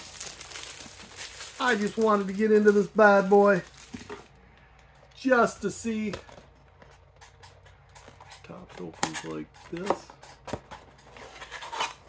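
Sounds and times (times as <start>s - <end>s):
person speaking: 1.6s - 3.8s, 5.1s - 6.4s, 8.3s - 10.2s.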